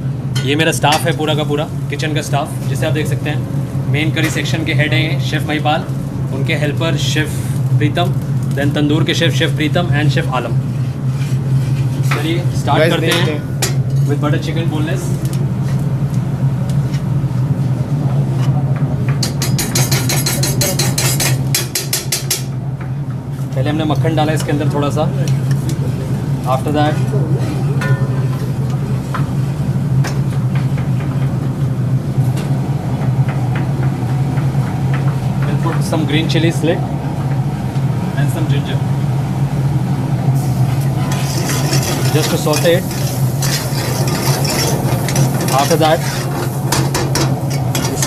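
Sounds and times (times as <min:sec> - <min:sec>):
exhaust hood drone: 0:00.0 - 0:48.0
steady low hum: 0:00.0 - 0:48.0
chillies sizzling in hot fat: 0:40.4 - 0:48.0
spoon scraping metal cookware: 0:41.0 - 0:48.0
steel ladle stirring in pan: 0:41.0 - 0:48.0.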